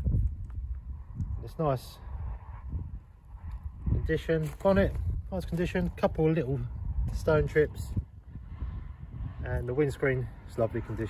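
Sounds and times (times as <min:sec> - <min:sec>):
low microphone rumble: 0:00.0 - 0:11.0
footsteps on gravel: 0:04.3 - 0:06.3.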